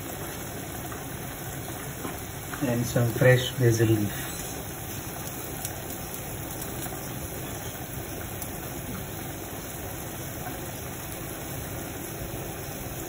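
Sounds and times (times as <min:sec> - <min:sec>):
steady low hum and hiss: 0:00.0 - 0:13.0.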